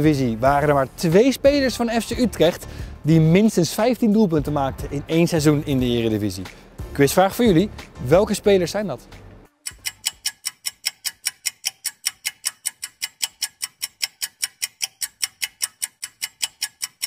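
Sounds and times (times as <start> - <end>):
fast clock ticking: 9.5 - 17.0.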